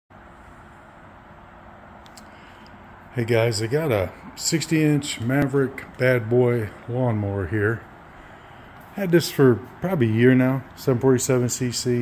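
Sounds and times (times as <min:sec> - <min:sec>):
faint low hum: 0:00.2 - 0:12.0.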